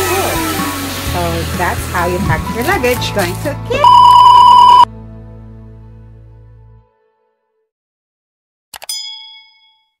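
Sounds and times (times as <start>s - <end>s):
bright ringing ding: 8.9s - 10.0s.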